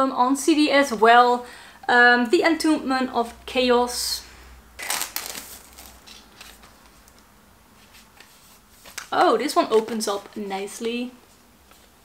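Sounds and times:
cardboard packaging rustling: 0:04.8 - 0:10.9.

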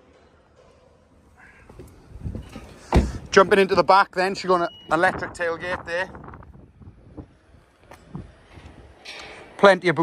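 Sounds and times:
wind on microphone: 0:05.1 - 0:09.0.

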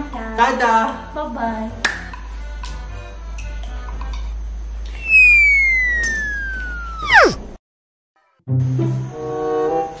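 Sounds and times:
cartoon falling whistle: 0:04.9 - 0:07.5.

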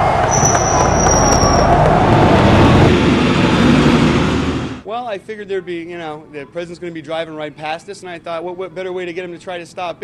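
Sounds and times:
vehicles driving past: 0:00.0 - 0:04.8.

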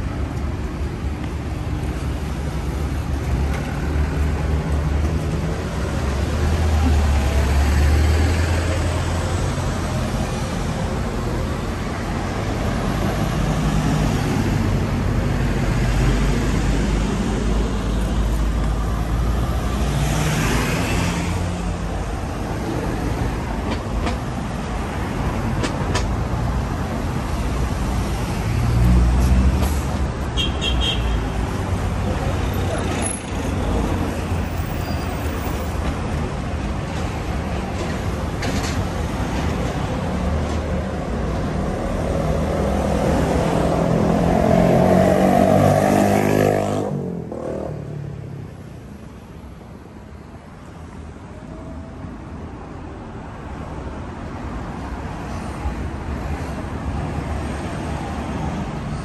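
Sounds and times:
road traffic rumble: 0:00.0 - 0:59.0.

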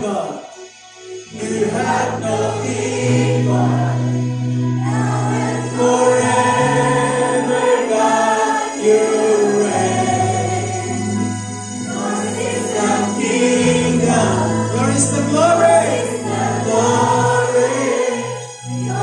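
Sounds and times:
congregation singing: 0:00.0 - 0:19.0
electric guitar: 0:00.0 - 0:19.0
keyboard: 0:00.0 - 0:19.0.

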